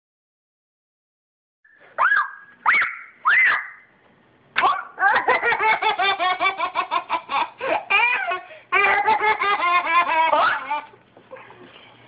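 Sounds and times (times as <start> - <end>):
toddler squealing: 2.0 - 3.8.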